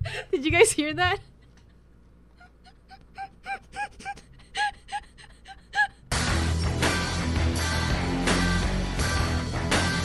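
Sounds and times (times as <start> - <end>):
woman's wheezing laughter: 2.3 - 6.1.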